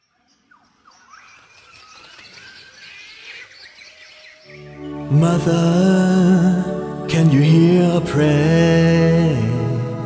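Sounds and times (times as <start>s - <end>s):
birds chirping and whistling: 0.0s - 6.9s.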